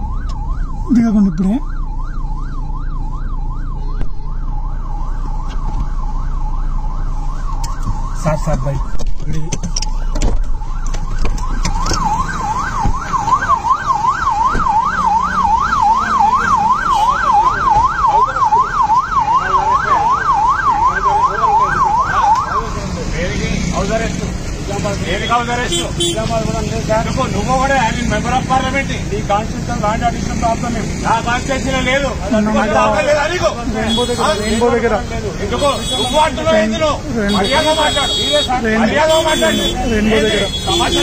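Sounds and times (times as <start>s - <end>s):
police siren yelp: 0.0s - 23.0s
traffic and engine rumble: 0.0s - 41.0s.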